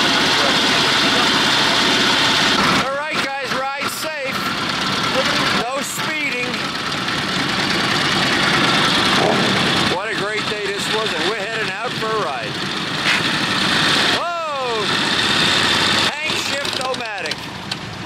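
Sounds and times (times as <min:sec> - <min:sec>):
voices: 0:00.0 - 0:01.9, 0:02.7 - 0:06.8, 0:08.7 - 0:12.6, 0:14.1 - 0:15.1, 0:15.7 - 0:17.5
motorcycle engines idling: 0:00.0 - 0:18.0
motorcycle passing close by: 0:08.6 - 0:09.7.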